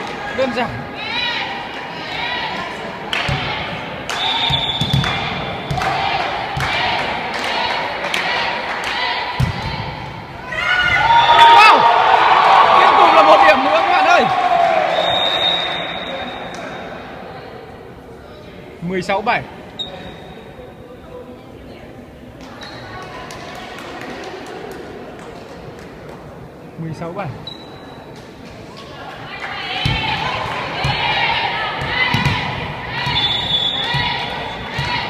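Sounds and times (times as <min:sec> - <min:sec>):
volleyballs hit and bouncing: 0:03.1 - 0:10.0, 0:29.6 - 0:35.0
players shouting: 0:05.5 - 0:16.8, 0:29.3 - 0:35.0.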